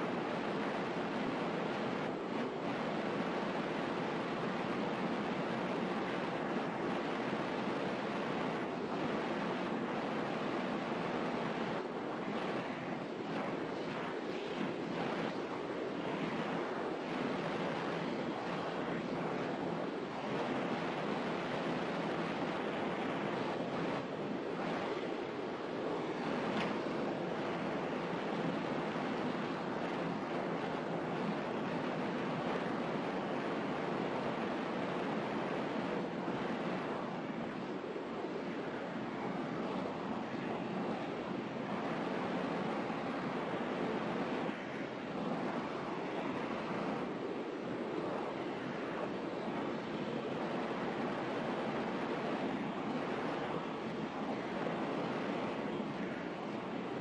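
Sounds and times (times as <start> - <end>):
steady rushing noise: 0.0 - 57.0.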